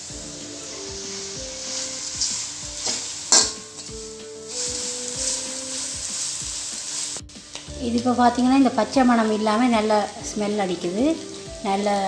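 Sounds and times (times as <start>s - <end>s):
light sizzle: 0.0s - 12.0s
spatula scraping a pan: 0.6s - 7.2s
spatula clacking against pan: 2.2s - 4.0s.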